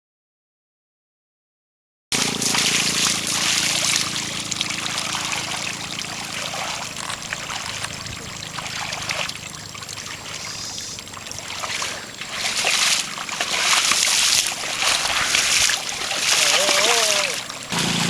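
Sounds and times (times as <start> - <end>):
muddy water sloshing: 2.2 - 18.0
faint low hum: 2.4 - 17.8.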